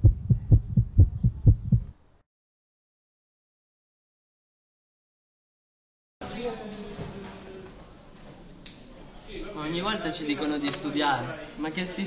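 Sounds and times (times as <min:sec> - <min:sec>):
low heartbeat-like thumps: 0:00.0 - 0:02.0.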